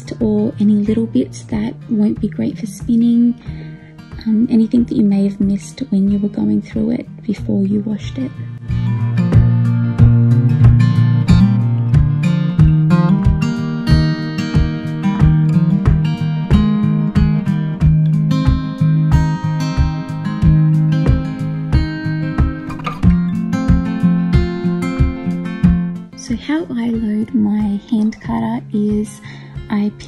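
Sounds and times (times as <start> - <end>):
acoustic guitar picking: 0.0 - 29.8.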